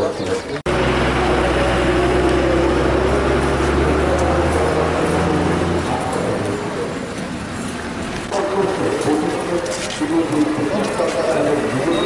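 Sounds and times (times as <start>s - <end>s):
street noise: 0.0s - 12.0s
vehicle engine humming: 0.4s - 12.0s.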